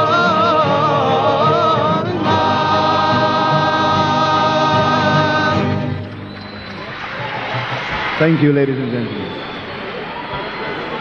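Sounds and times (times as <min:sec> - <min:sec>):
male choir singing: 0:00.0 - 0:06.1
guitar accompaniment: 0:00.0 - 0:08.0.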